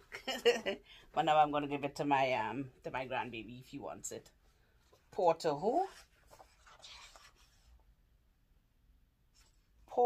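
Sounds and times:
book page turning: 5.6s - 7.8s.

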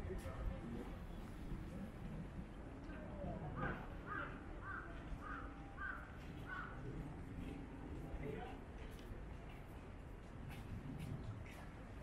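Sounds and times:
faint street noise: 0.0s - 12.0s
crow cawing: 4.1s - 6.8s.

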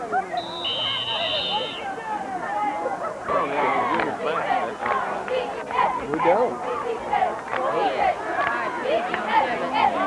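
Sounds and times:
spectators chatting: 0.0s - 10.0s
referee whistles: 0.3s - 1.9s.

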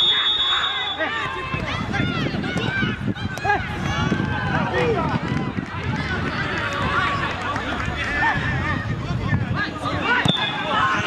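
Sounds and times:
voices shouting over one another: 0.0s - 7.4s, 8.0s - 11.0s.

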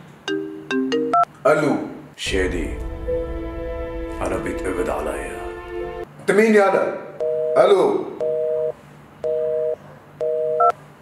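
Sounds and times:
telephone busy tone beeps: 7.2s - 7.6s, 8.2s - 10.7s.

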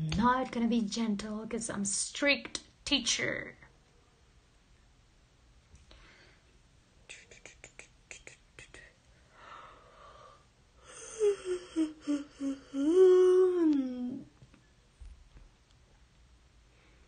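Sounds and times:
woman humming: 10.8s - 14.4s.

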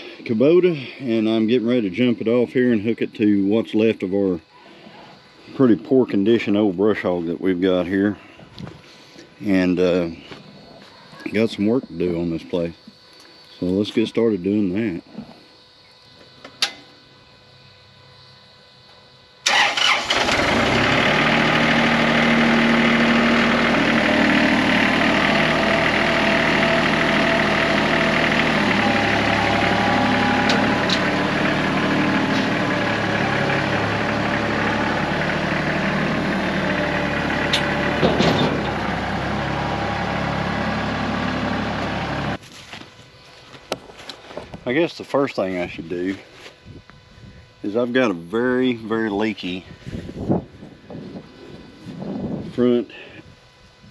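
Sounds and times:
tractor diesel engine running: 19.4s - 42.4s.

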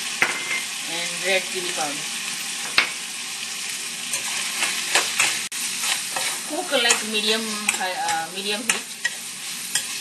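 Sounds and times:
food sizzling in oil: 0.0s - 10.0s
metal spoon scraping pan: 4.1s - 10.0s.

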